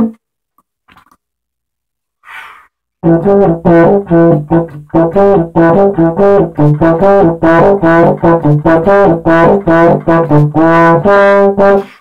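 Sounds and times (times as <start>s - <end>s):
quick breath through mouth: 2.2s - 2.8s.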